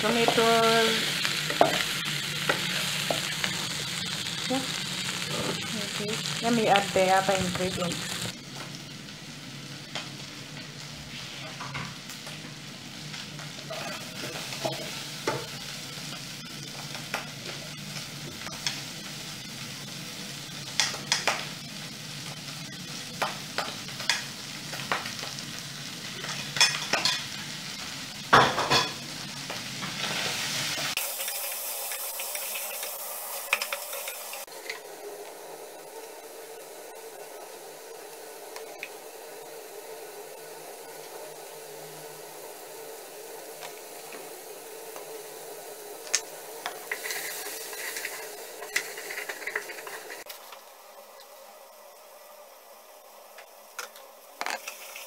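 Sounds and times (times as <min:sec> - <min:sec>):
pork sizzling in a pot: 0:00.0 - 0:55.0.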